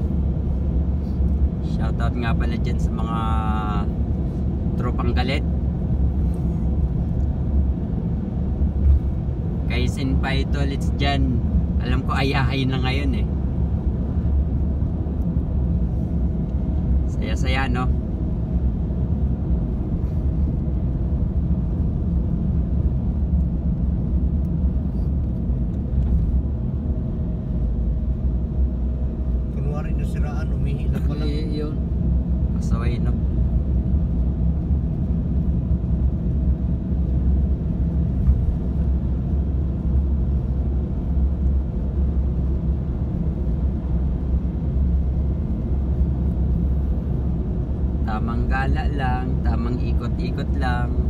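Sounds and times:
car cabin road rumble: 0:00.0 - 0:51.0.

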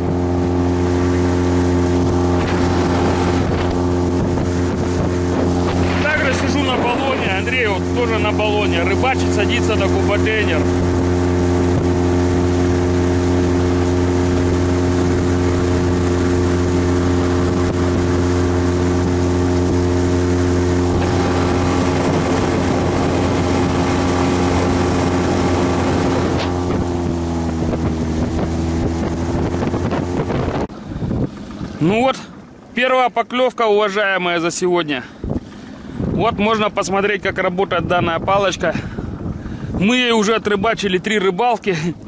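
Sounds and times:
outboard motor running: 0:00.0 - 0:42.0
water and wind noise: 0:00.0 - 0:42.0.

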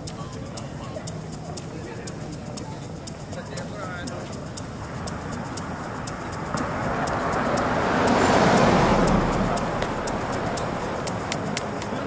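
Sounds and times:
ambient electronic music: 0:00.0 - 0:12.0
crackling clicks: 0:00.0 - 0:12.0
wide noise swell: 0:00.0 - 0:12.0
low hum: 0:08.6 - 0:11.3.

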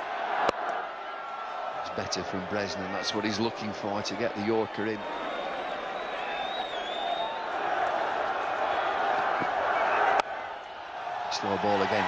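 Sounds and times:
stadium crowd din: 0:00.0 - 0:12.0
faint wavering whistle: 0:05.2 - 0:07.5.

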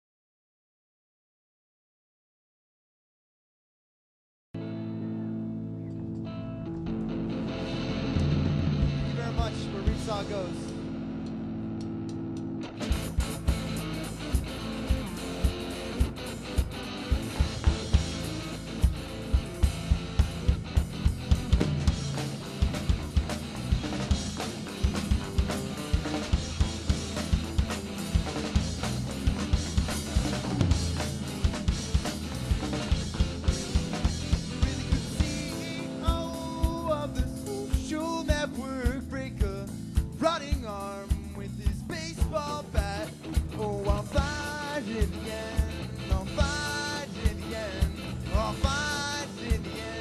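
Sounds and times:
low amplifier drone: 0:04.6 - 0:42.5
electric guitar: 0:04.6 - 0:50.0
rock band playing: 0:04.6 - 0:50.0
bass drum and snare hits: 0:08.1 - 0:10.2, 0:12.8 - 0:35.5.

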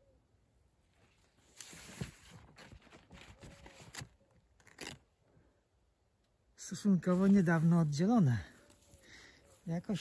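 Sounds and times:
faint rustling and scraping: 0:00.8 - 0:05.0, 0:07.0 - 0:10.0.

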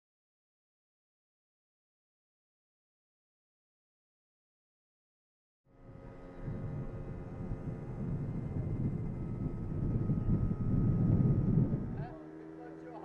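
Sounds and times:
vehicle engine hum: 0:05.7 - 0:13.0
wind buffeting microphone: 0:05.8 - 0:12.9
faint voices: 0:11.7 - 0:13.0.

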